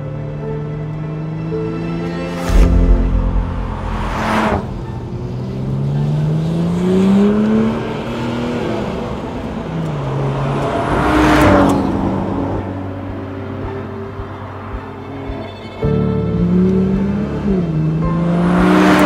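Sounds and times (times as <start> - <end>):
car engine accelerating: 0.9 - 15.4, 16.2 - 19.0
car passing by: 1.2 - 15.5, 16.4 - 19.0.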